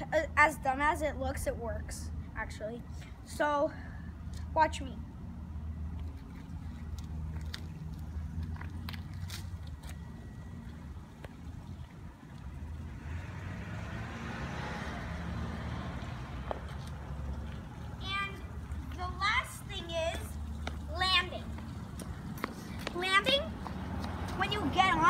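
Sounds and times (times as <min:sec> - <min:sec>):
low outdoor rumble: 0:00.0 - 0:25.0
car passing: 0:05.2 - 0:25.0.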